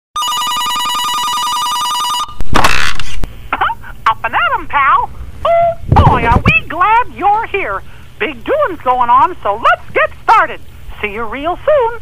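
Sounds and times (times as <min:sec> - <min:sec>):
telephone ringing trill: 0:00.2 - 0:02.4.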